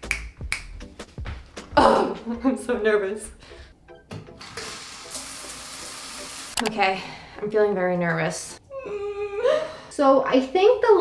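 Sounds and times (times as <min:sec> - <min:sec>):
shower water spray hissing: 0:04.4 - 0:06.6.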